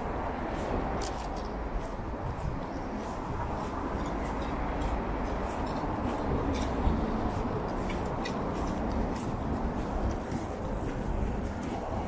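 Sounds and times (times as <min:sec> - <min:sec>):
city road traffic rumble: 0:00.0 - 0:12.0
footsteps crunching on snow: 0:00.0 - 0:12.0.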